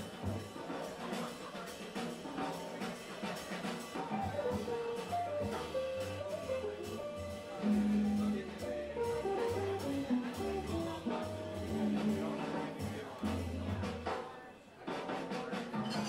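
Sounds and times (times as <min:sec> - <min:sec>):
drums: 0:00.0 - 0:16.0
jazz piano notes: 0:00.0 - 0:16.0
upright bass: 0:04.2 - 0:14.1.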